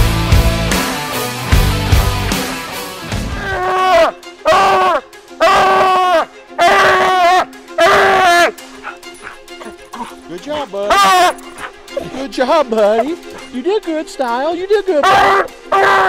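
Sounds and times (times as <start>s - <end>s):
dog baying: 3.6s - 12.2s, 12.9s - 13.5s, 15.0s - 16.0s
dog barking: 4.0s - 10.2s, 10.9s - 12.1s, 15.0s - 16.0s.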